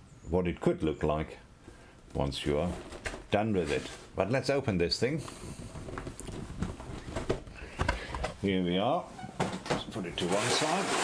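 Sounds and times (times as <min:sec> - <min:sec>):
cardboard lid scraping: 0:10.2 - 0:11.0.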